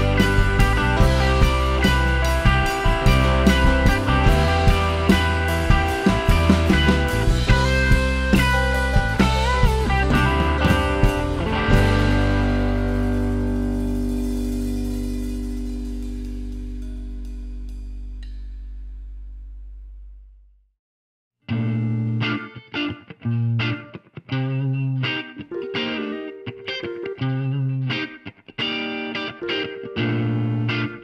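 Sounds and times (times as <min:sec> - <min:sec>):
electric guitar chord riff: 0:00.0 - 0:18.1, 0:21.5 - 0:31.0
held chord ringing: 0:00.0 - 0:18.3.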